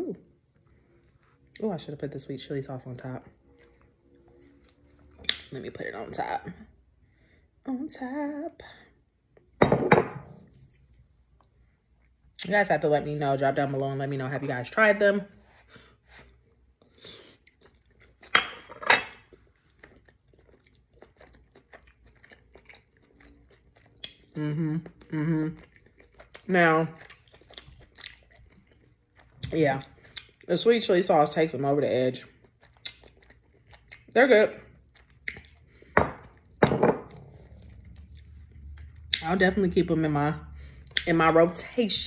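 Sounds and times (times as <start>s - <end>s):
person chewing food: 3.4s - 5.4s, 15.6s - 30.5s, 32.2s - 39.3s.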